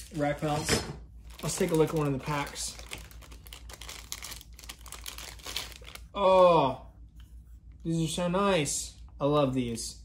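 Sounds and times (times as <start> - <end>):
plastic packaging crinkling: 0.0 - 6.2.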